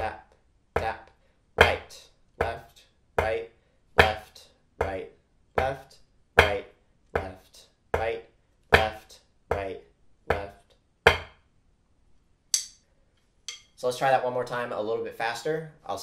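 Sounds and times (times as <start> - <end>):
person speaking: 0.0 - 10.8
drumsticks on practice pad: 12.5 - 12.9, 13.5 - 13.8.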